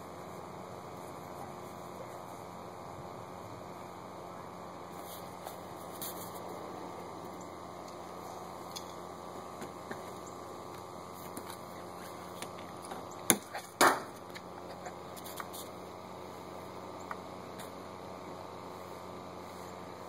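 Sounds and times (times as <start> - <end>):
steady hiss: 0.0 - 20.0.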